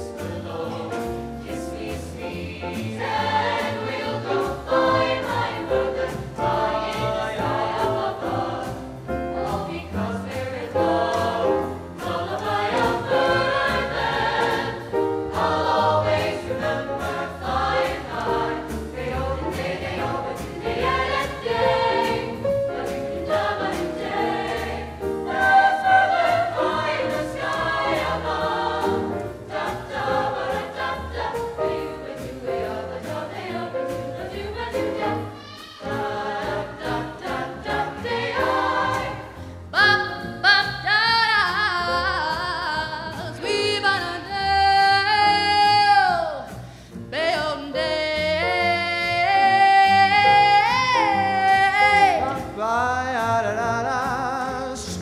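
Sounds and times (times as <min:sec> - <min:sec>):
choir singing: 0:00.0 - 0:40.8.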